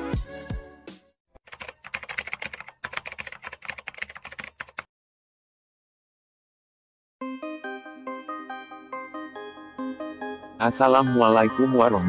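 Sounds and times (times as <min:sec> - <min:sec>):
keyboard typing clicks: 0:01.5 - 0:04.9.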